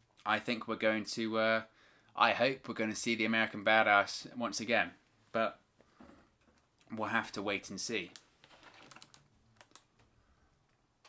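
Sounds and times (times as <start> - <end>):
faint plastic clicks: 8.1 - 10.8.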